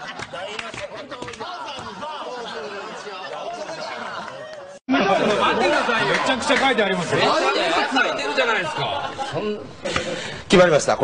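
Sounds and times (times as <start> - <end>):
overlapping talk: 0.0 - 10.9.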